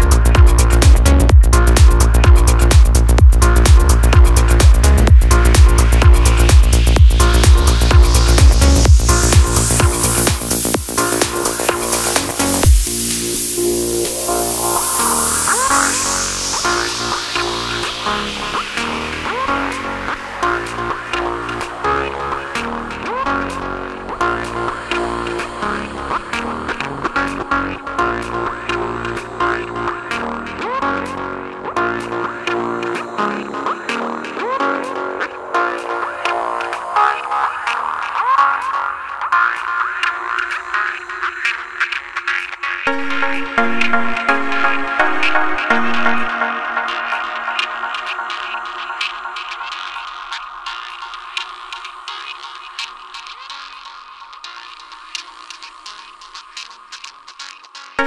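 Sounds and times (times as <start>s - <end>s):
kick drum: 0.0s - 13.0s
psytrance music: 0.0s - 58.0s
gliding synth tones: 42.9s - 51.0s.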